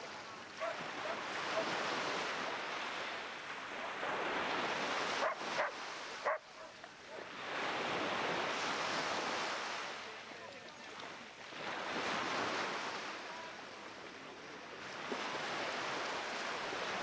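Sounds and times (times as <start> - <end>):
small waves washing on shore: 0.0 - 17.0
dog barking: 0.6 - 1.7, 5.2 - 7.3.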